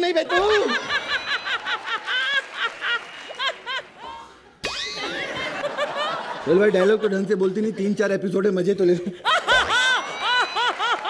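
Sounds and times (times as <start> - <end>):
woman laughing hard: 0.3 - 4.3, 4.9 - 7.0, 9.2 - 11.0.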